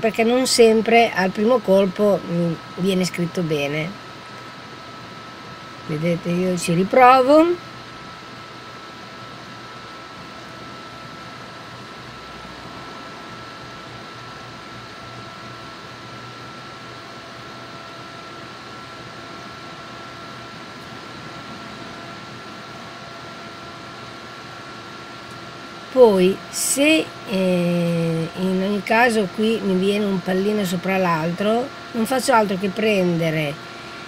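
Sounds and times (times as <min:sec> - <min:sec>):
machine hum and hiss: 0:00.0 - 0:34.0.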